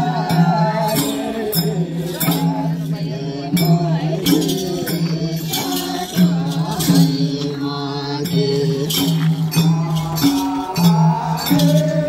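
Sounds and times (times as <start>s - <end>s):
group singing folk song: 0.0s - 12.0s
hand drum strokes: 0.0s - 12.0s.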